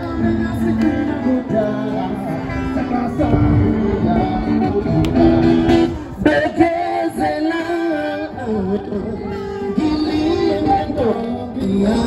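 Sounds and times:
guitar music: 0.0 - 12.0.

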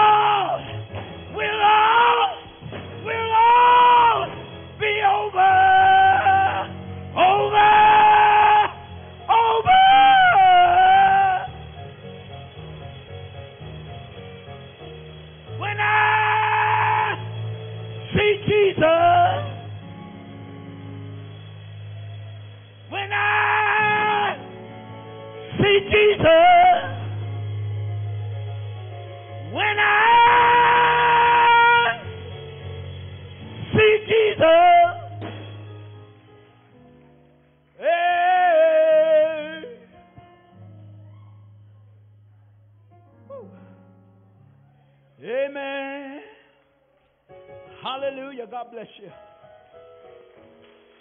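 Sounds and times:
low keyboard accompaniment: 0.0 - 46.0, 46.8 - 51.0
man singing wordless cries: 1.3 - 11.6, 18.1 - 19.8, 22.9 - 24.5, 25.5 - 27.2, 29.5 - 32.0, 33.7 - 35.2, 37.8 - 40.0, 45.2 - 46.6.

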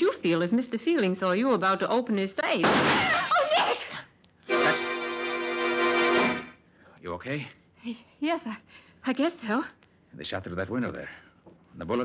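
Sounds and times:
held organ chord: 4.5 - 6.5.

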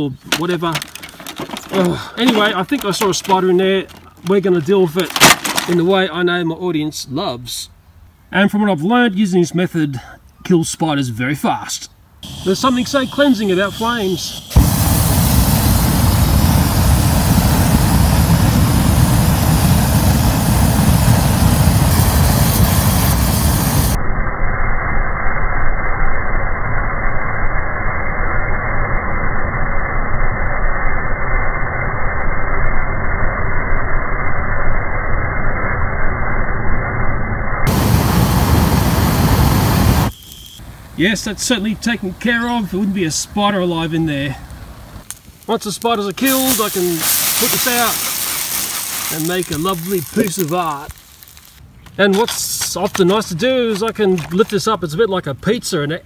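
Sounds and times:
flamethrower rush of flame: 12.2 - 24.1, 27.1 - 40.6, 45.1 - 51.6.

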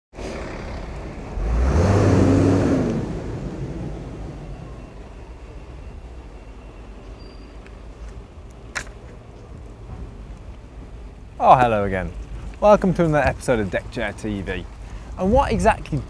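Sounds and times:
low hum of traffic: 0.1 - 16.0
vehicle engine passing by: 0.2 - 5.0.

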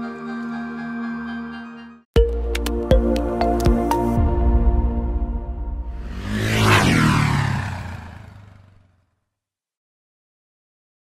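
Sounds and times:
sweeping pass-by effect: 5.6 - 8.8.

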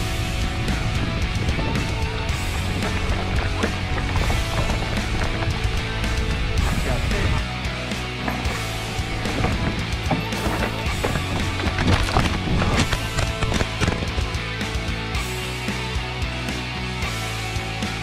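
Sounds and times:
rock music with steady beat: 0.0 - 18.0
bike crashing on rocks: 1.6 - 7.4, 8.2 - 14.2.

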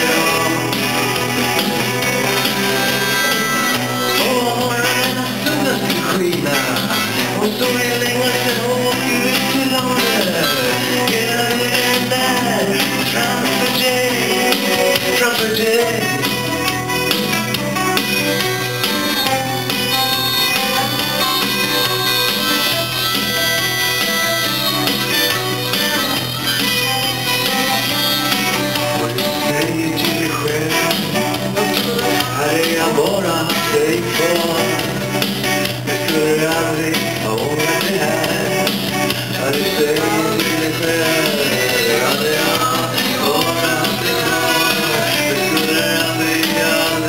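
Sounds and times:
harmonica solo: 0.0 - 5.4, 13.2 - 29.7
electric guitar: 0.0 - 47.0
keyboard: 0.0 - 47.0
live rock band: 0.0 - 47.0.

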